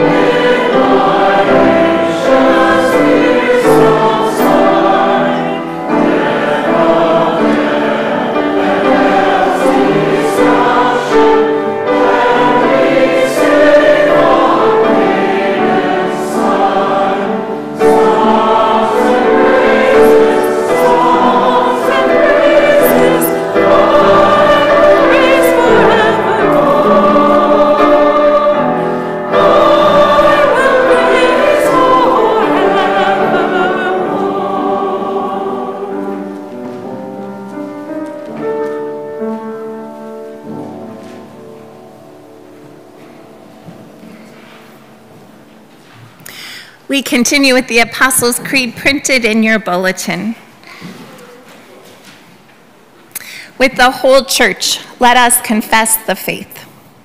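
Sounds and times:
congregation singing a hymn: 0.0 - 46.2.

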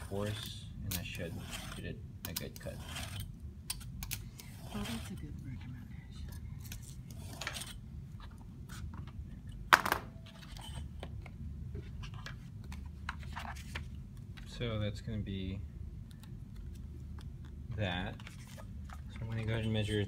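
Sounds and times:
craft knife scraping through board: 0.0 - 3.3, 4.4 - 5.2, 6.7 - 7.8.

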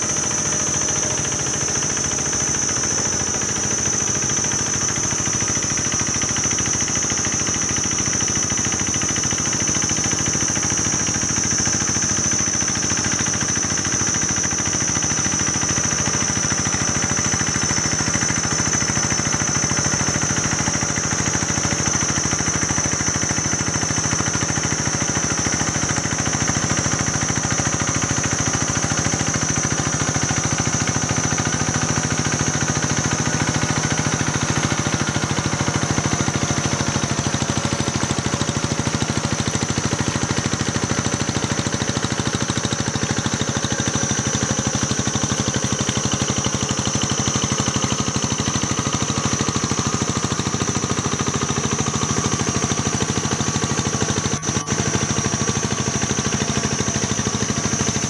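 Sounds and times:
high-pitched whine: 0.0 - 23.7
small tractor engine running: 0.0 - 58.0.

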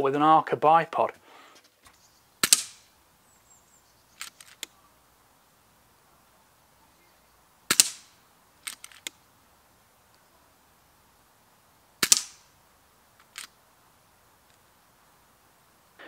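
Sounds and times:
rifle action recocking clicks: 2.4 - 2.8, 4.2 - 4.7, 8.6 - 9.2, 12.0 - 12.4, 13.2 - 13.6
air rifle shot crack: 2.4 - 2.9, 7.7 - 8.1, 12.0 - 12.5.

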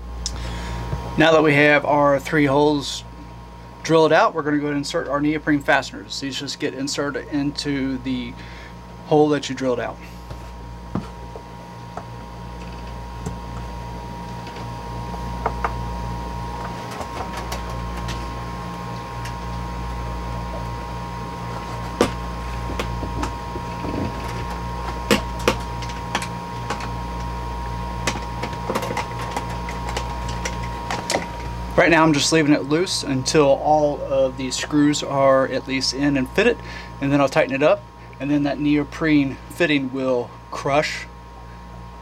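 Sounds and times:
low machine hum: 0.0 - 42.0.

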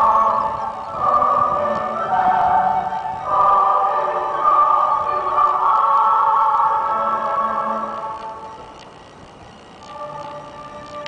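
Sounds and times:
choir singing held chords: 0.0 - 8.8, 9.8 - 11.0.

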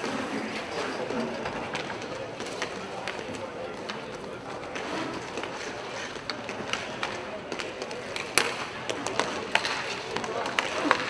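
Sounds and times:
players' voices: 0.0 - 11.0
skate wheels rolling: 0.0 - 11.0
sticks and puck clicking: 1.5 - 11.0.

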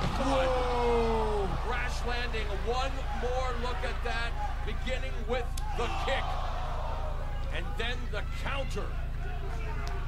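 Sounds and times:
men talking: 0.0 - 10.0
steady low hum: 0.0 - 10.0.

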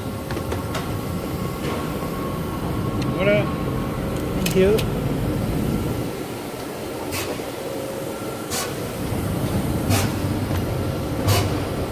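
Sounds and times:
train station hall rumble: 0.0 - 11.9
hiss and thud bursts: 8.5 - 8.8, 9.8 - 10.3, 11.2 - 11.6.

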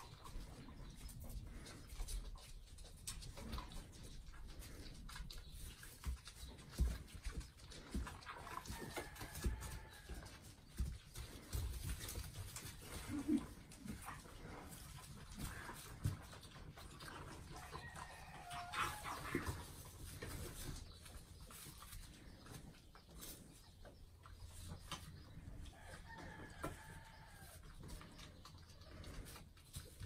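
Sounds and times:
farm animal calls: 0.0 - 29.9.

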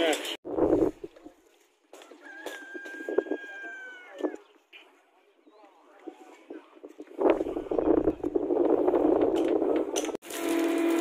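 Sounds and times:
rooster crowing: 2.0 - 4.4.

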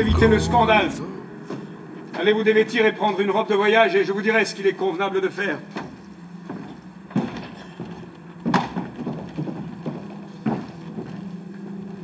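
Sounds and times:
steady low hum: 0.0 - 1.5.

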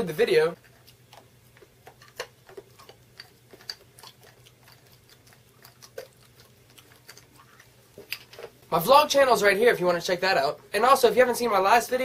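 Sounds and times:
low steady hum: 0.0 - 12.0
person chewing candy: 0.6 - 8.6.

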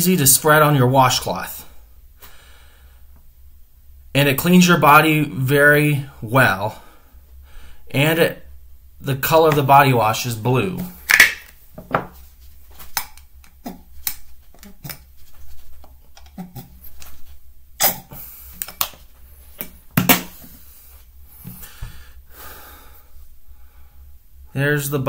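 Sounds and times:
plastic bottle and glass clicks: 11.1 - 12.0.

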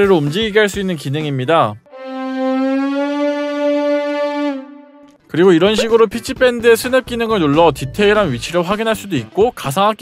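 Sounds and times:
sustained synthesized note: 1.9 - 5.2.

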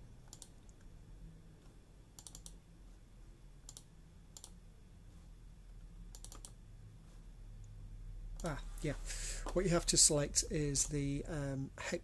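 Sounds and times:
low steady hum: 0.0 - 12.0
computer mouse clicks: 0.2 - 0.9, 2.2 - 2.6, 3.6 - 4.6, 6.1 - 6.6, 8.4 - 8.6.

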